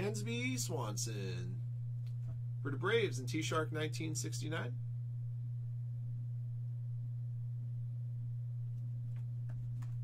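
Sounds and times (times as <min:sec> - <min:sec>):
low-pitched hum: 0:00.0 - 0:10.0.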